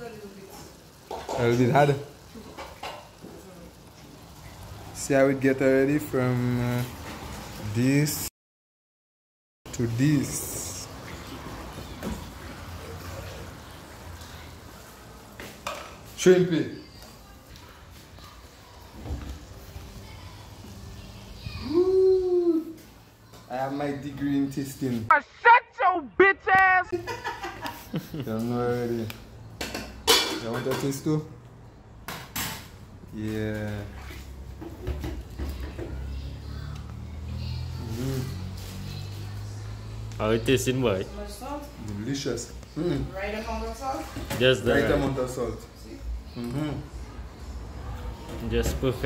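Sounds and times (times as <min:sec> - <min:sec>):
vegetables sizzling in a pot: 0:00.0 - 0:08.3, 0:09.7 - 0:25.1, 0:28.4 - 0:46.0.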